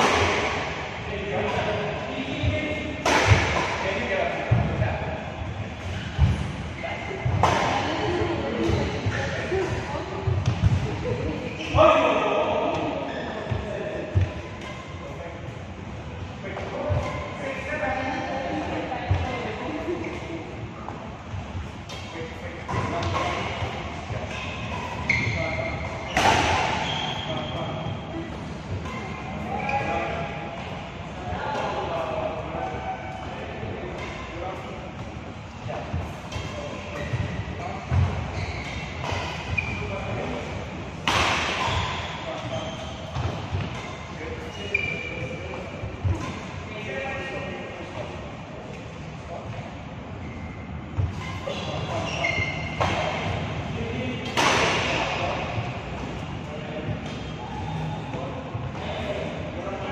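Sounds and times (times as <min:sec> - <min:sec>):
racket hitting shuttlecock: 0:03.0 - 0:03.8, 0:07.3 - 0:07.9, 0:21.9 - 0:26.8, 0:41.0 - 0:42.5.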